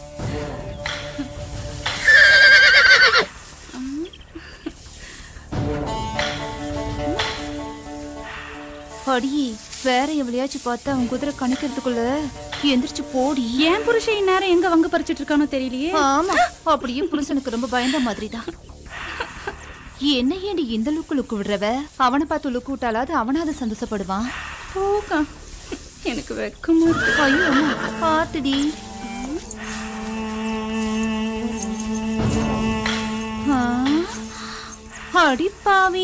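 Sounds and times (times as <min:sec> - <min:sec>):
breathy hiss-like noise: 0:00.0 - 0:36.0
person speaking: 0:09.0 - 0:18.6, 0:26.0 - 0:36.0.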